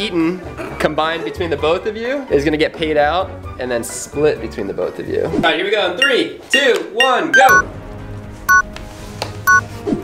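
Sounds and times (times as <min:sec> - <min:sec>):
background music: 0:00.0 - 0:10.0
two-tone electronic beeps: 0:06.0 - 0:07.7.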